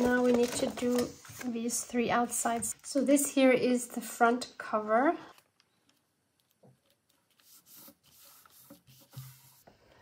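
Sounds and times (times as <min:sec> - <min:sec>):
paper rustling and brushing: 0:06.8 - 0:09.8.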